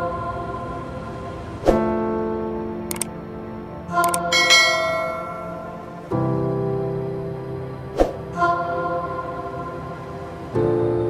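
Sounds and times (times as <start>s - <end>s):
soft background music: 0.0s - 11.0s
mouse clicks: 4.0s - 4.3s
bell chime: 4.1s - 6.0s.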